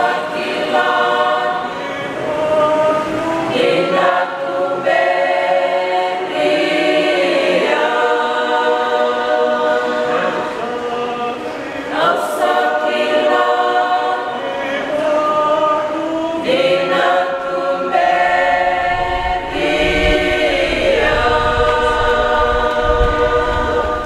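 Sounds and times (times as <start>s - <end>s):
choir singing held chords: 0.0s - 24.0s.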